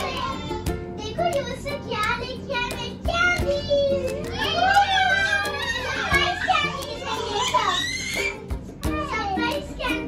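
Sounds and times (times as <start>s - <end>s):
children calling out excitedly: 0.0s - 10.0s.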